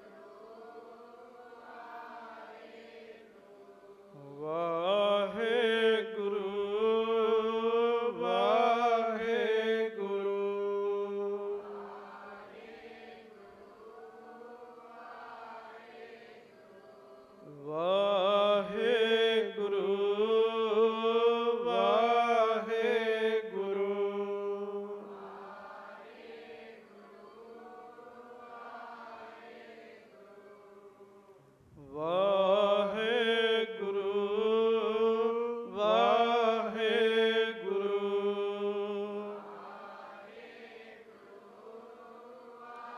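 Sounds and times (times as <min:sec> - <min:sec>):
man chanting in long sung lines: 0:00.0 - 0:42.9.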